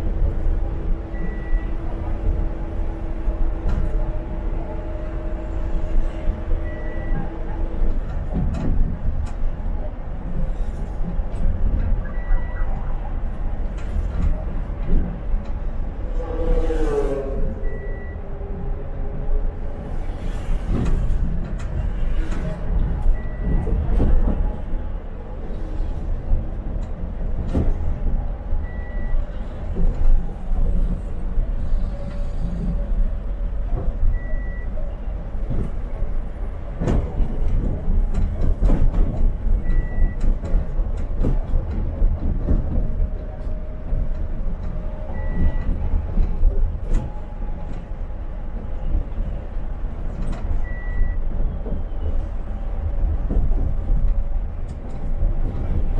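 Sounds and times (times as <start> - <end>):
bus engine and road rumble: 0.0 - 55.9
knocks and rattles in cabin: 36.7 - 44.6.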